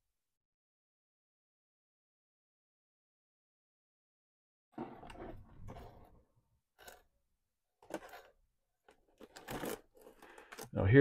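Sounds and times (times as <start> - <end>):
plastic cases scraping together: 4.8 - 7.1, 7.8 - 10.8.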